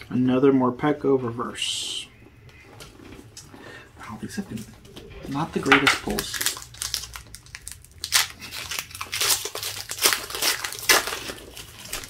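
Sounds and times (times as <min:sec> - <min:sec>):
foil wrapper crinkling: 0:05.3 - 0:12.0.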